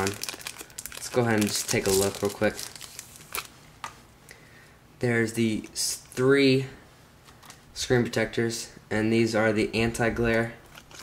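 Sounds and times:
plastic packaging clicks: 0:00.0 - 0:03.5, 0:10.7 - 0:11.0.

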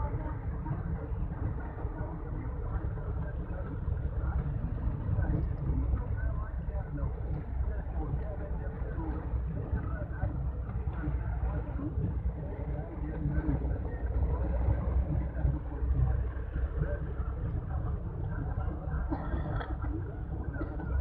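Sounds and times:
vehicle engine and road rumble: 0:00.0 - 0:21.0.

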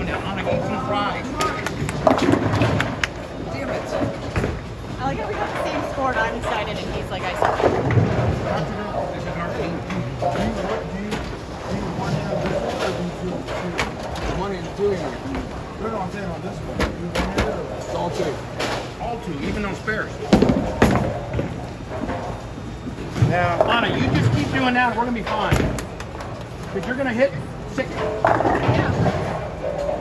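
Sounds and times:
bowling balls and pins clattering: 0:01.7 - 0:15.8, 0:16.7 - 0:30.0.

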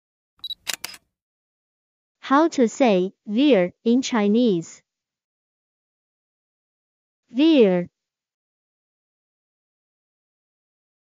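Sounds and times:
sharp clicks: 0:00.4 - 0:01.0.

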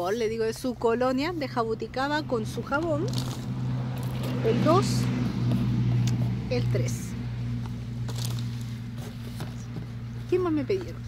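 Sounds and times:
low mechanical hum: 0:00.0 - 0:11.0
cardboard boxes handled: 0:08.0 - 0:11.0.

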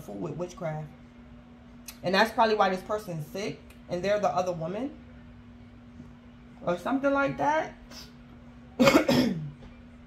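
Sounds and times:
person clearing throat: 0:08.8 - 0:09.6
person coughing: 0:08.8 - 0:09.6.

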